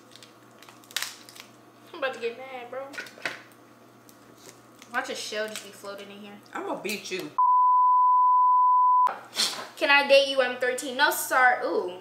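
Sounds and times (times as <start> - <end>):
crab shell cracking: 0.0 - 1.6.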